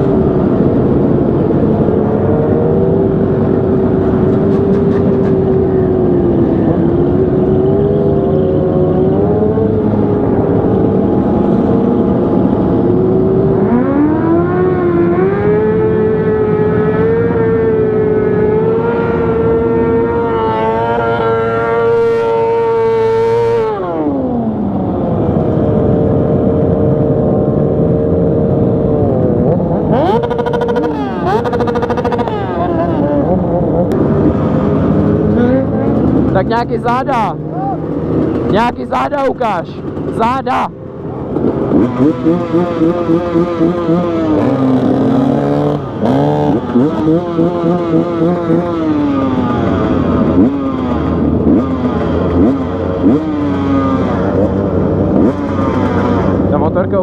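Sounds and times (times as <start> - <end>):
motorcycle engine revving: 0.0 - 57.0
other motorcycles running: 0.0 - 57.0.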